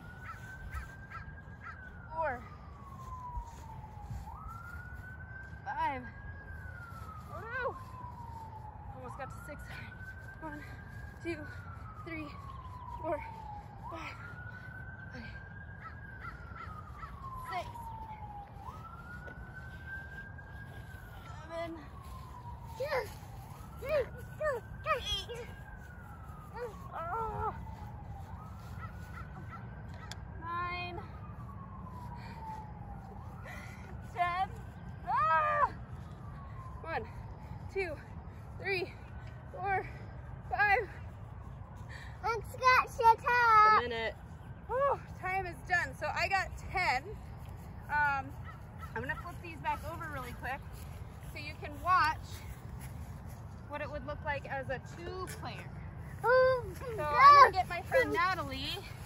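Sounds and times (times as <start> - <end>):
siren wailing: 0.0 - 59.0.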